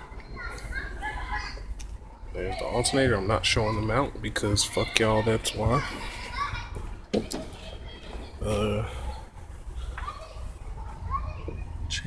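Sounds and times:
children's voices playing: 0.0 - 12.0.

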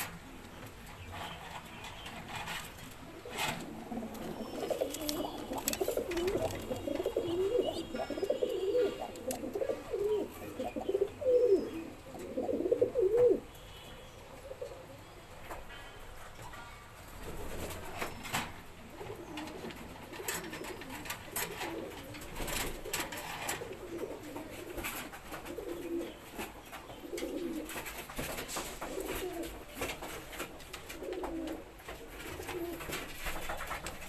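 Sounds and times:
pigeons cooing: 1.0 - 13.5, 18.8 - 28.0, 28.8 - 29.9, 30.8 - 33.6.

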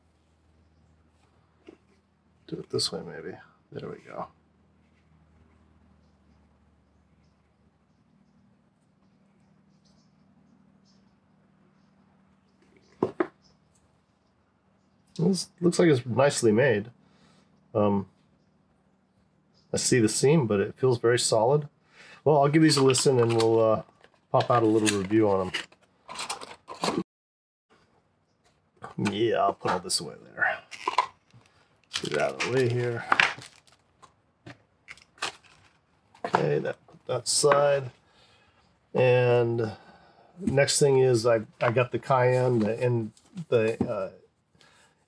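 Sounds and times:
faint steady hum: 34.8 - 45.0.

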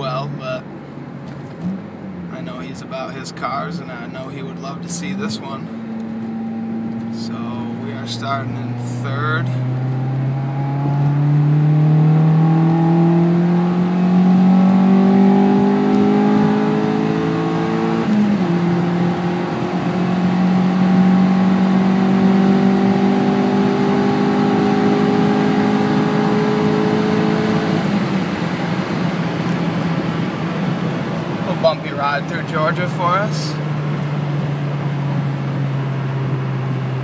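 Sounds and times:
car engine revving under full throttle: 0.0 - 37.0.

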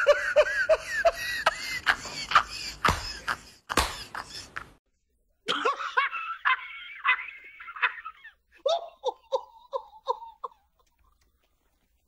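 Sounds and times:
man laughing: 0.0 - 4.8, 5.5 - 11.0
hand claps: 2.9 - 3.1, 3.7 - 4.2
high wavering laugh: 5.5 - 11.2.

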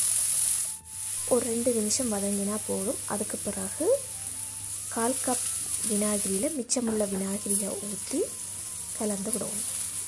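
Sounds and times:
paste sizzling in hot oil: 0.0 - 10.0.

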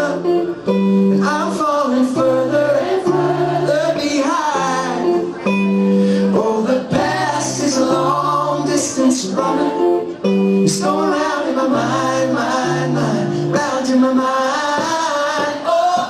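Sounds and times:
man singing: 0.0 - 5.6, 6.2 - 16.0
electric guitar chords: 0.0 - 16.0.

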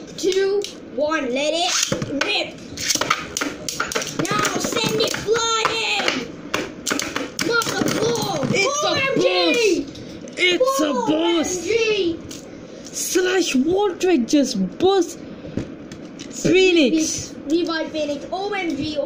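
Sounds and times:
child exclaiming: 4.2 - 6.3, 7.4 - 12.2.

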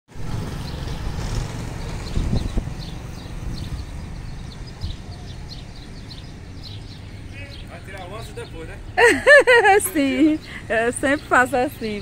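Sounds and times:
small birds chirping: 0.4 - 12.0.

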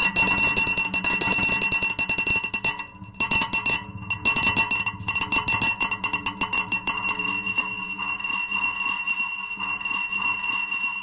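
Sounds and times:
high-pitched electronic whine: 0.0 - 11.0
low electronic tone: 2.8 - 10.3.

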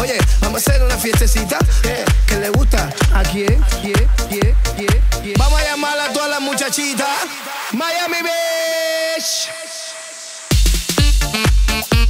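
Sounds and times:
dance track breakdown: 0.0 - 12.0.

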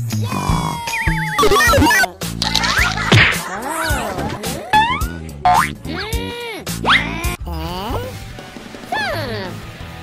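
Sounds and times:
background music: 0.0 - 10.0
cartoon boing sound effects: 0.5 - 2.1, 4.7 - 5.8
sharp whacks: 2.6 - 3.4.

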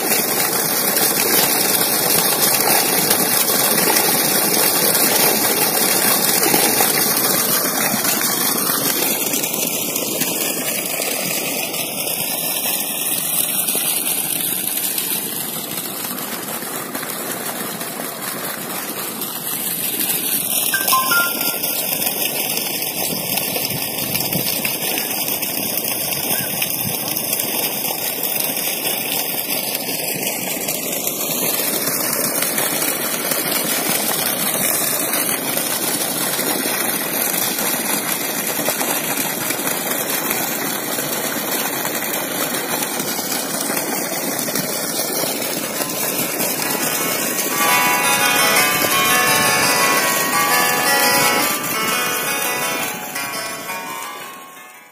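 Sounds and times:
water pouring into a pond: 0.0 - 54.9
music with bell-like tones: 20.8 - 22.2, 46.6 - 54.9.

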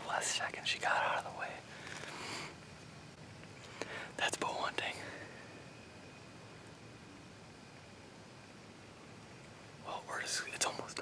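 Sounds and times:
man whispering: 0.0 - 1.8, 4.1 - 5.4, 9.8 - 11.0.

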